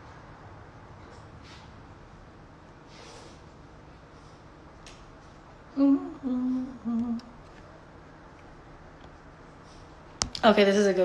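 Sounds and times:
woman humming: 5.7 - 7.4.

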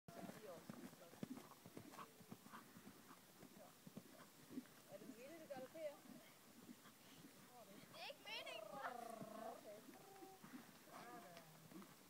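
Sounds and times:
horse hooves cantering on dirt: 0.1 - 12.0
voices: 7.4 - 11.6.

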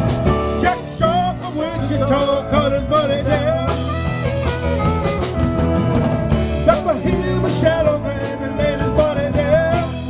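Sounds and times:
drum kit: 0.0 - 10.0
electric bass: 0.0 - 10.0
electric guitar: 0.0 - 10.0
saxophone: 3.0 - 9.3.

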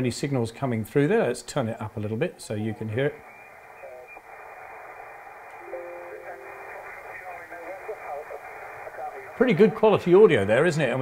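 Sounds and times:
radio band hiss: 2.5 - 11.0
steady radio tones: 2.6 - 11.0
voice over radio: 6.0 - 10.2.

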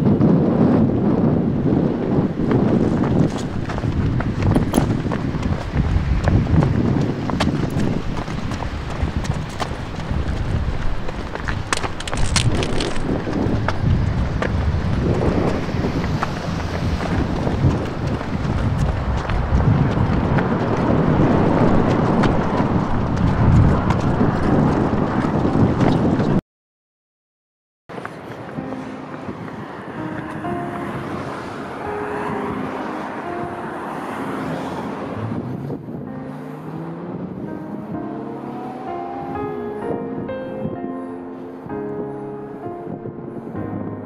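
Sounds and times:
wind on microphone: 0.0 - 26.4, 27.9 - 44.0
footsteps running on pavement: 2.2 - 26.4, 28.0 - 31.8.

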